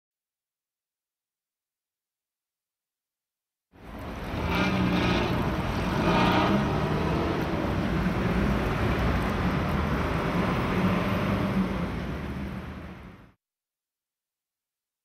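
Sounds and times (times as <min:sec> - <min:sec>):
rumble of passing vehicles: 0:03.8 - 0:13.4.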